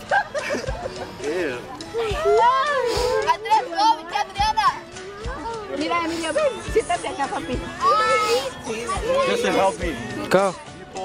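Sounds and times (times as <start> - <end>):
children and adults talking and calling: 0.0 - 11.0.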